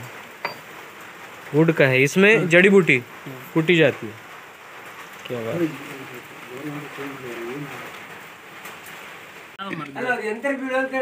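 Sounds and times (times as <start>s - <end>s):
rain hissing: 0.0s - 11.0s.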